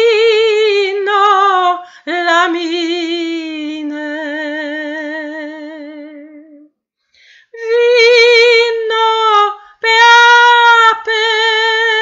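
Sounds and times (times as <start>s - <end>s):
woman breathing in: 7.0s - 7.6s.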